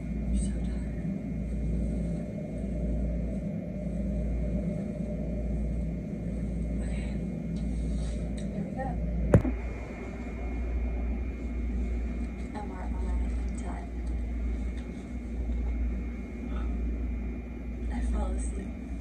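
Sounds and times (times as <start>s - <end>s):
low room rumble: 0.0s - 19.0s.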